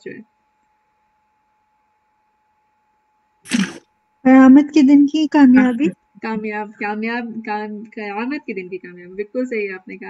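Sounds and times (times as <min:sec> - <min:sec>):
faint steady hum: 0:00.0 - 0:10.0
person sneezing: 0:03.5 - 0:03.8.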